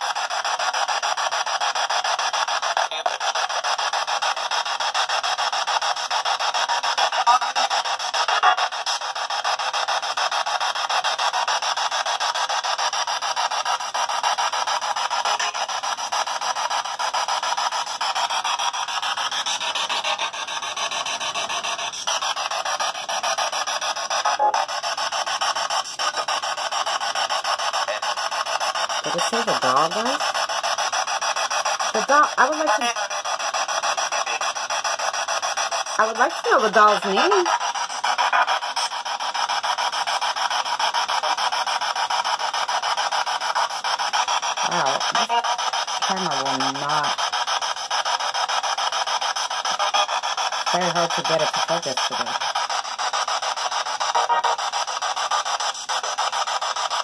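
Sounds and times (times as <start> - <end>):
chopped radio snatches: 0.0 - 57.0
radio static hiss: 0.0 - 57.0
gliding pitched radio snatch: 0.2 - 57.0
man's voice on radio: 2.8 - 3.4, 29.0 - 30.3, 32.0 - 33.1, 36.0 - 37.6, 44.6 - 47.2, 50.7 - 52.4.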